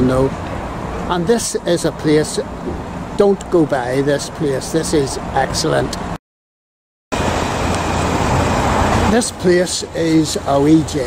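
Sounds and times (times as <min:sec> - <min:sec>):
road traffic hiss: 0:00.0 - 0:06.2, 0:07.1 - 0:11.0.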